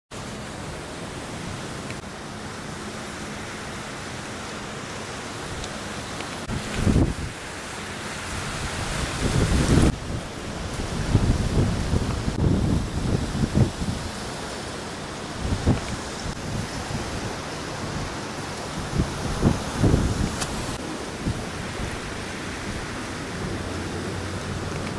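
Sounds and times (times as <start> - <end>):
steady hiss: 0.1 - 24.9
wind noise on microphone: 5.4 - 24.9.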